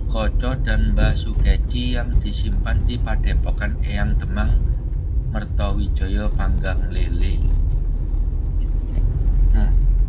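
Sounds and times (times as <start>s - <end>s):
vehicle driving rumble: 0.0s - 10.0s.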